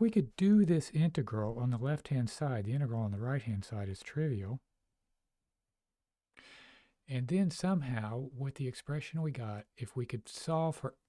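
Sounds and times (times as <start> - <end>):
man's faint intake of breath: 6.4 - 7.0.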